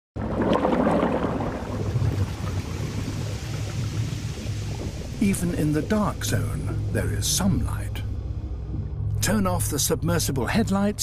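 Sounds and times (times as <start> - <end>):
deep underwater rumble: 0.2 - 11.0.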